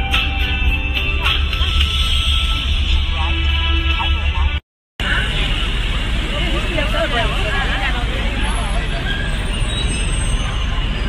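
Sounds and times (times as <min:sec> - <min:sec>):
music: 0:00.0 - 0:04.6
traffic rumble: 0:00.0 - 0:11.0.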